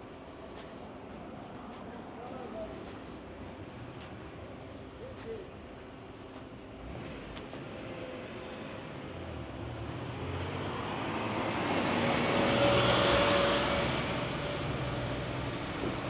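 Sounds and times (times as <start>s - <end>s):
car passing: 6.9s - 16.0s.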